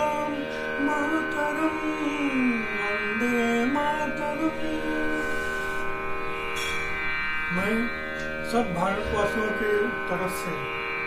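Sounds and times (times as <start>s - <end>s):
instrumental drone: 0.0s - 11.0s.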